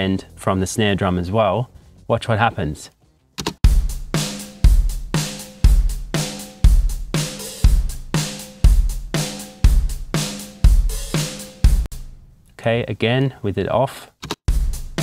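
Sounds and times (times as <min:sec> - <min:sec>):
drum kit playing: 0:03.6 - 0:12.2, 0:14.5 - 0:15.0.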